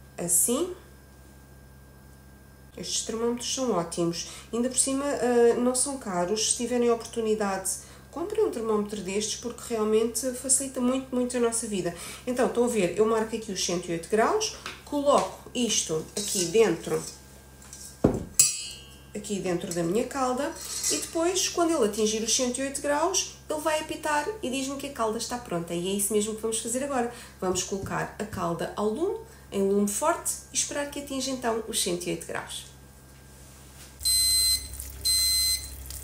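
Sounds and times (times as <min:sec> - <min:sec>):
metallic clink on pot: 0:18.4 - 0:19.1
thermometer alarm beeping: 0:34.0 - 0:35.8.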